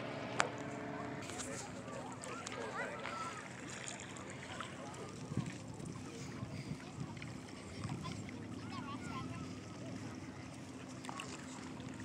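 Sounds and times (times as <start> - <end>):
faint distant voices: 0.2 - 12.0
wind noise on microphone: 5.2 - 8.2.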